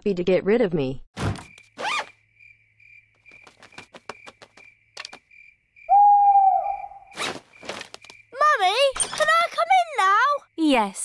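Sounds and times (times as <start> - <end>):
crickets chirping: 1.5 - 11.0
owl hooting: 5.9 - 7.2.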